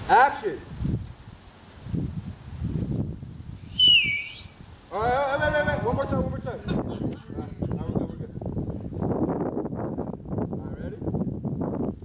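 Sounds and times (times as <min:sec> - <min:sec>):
loud finger whistle: 0:03.6 - 0:04.6.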